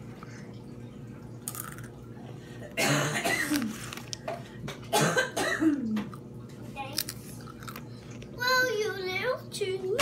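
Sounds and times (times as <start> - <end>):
boy coughing: 2.8 - 3.7, 4.9 - 5.9.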